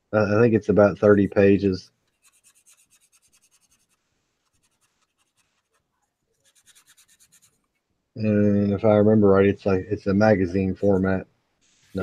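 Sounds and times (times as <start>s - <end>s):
marker scratching on paper: 2.0s - 7.6s, 10.8s - 12.0s.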